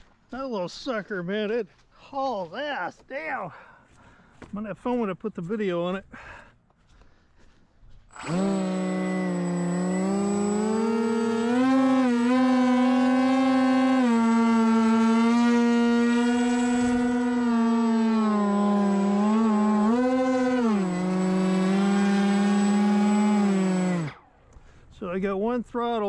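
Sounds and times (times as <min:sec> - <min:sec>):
electric motors buzzing whine: 0:08.1 - 0:24.3.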